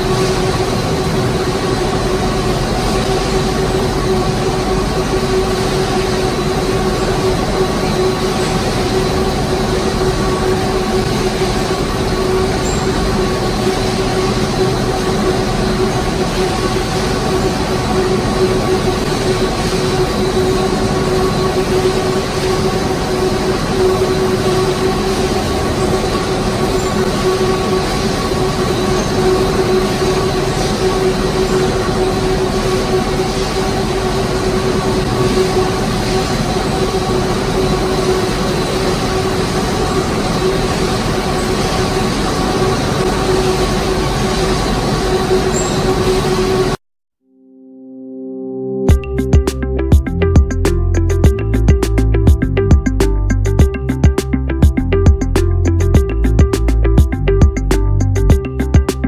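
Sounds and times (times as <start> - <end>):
drying drums droning: 0.0 - 46.7, 48.9 - 59.0.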